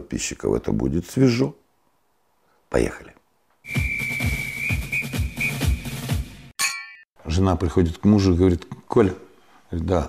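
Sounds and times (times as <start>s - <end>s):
high whistle-like tone: 3.6s - 6.0s
intro jingle music with beat: 3.7s - 6.5s
bright bell ding: 6.6s - 7.0s.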